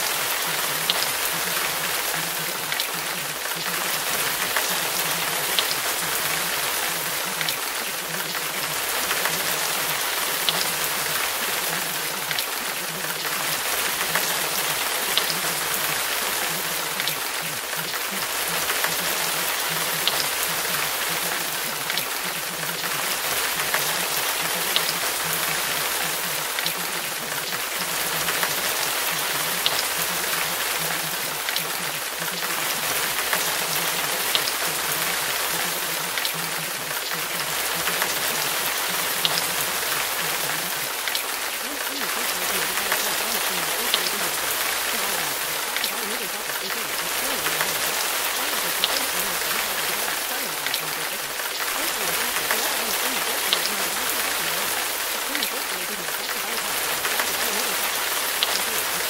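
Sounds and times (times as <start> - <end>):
faint drip ticks: 0.0 - 59.0
steady rain: 0.0 - 59.0.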